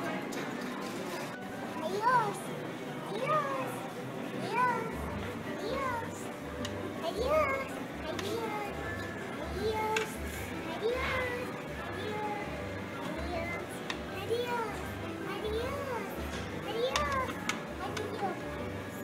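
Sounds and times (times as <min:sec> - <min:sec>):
child's voice: 0:01.7 - 0:06.4, 0:07.0 - 0:18.5.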